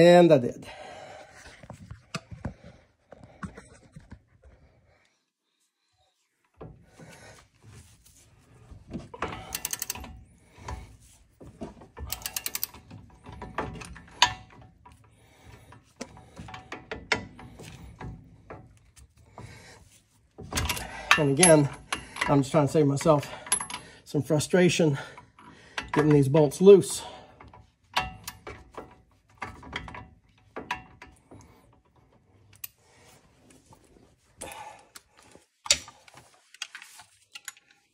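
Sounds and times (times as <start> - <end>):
socket ratchet clicking: 9.5 - 10.1, 12.1 - 12.8.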